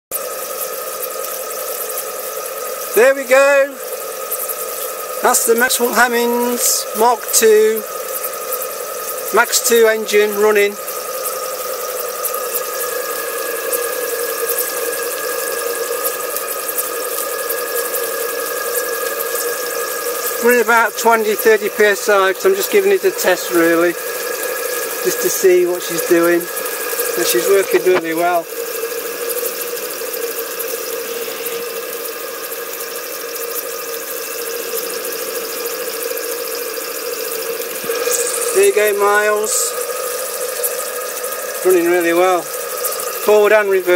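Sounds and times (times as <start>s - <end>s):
steam engine hissing: 0.2s - 43.9s
steam whistling tones: 0.2s - 43.9s.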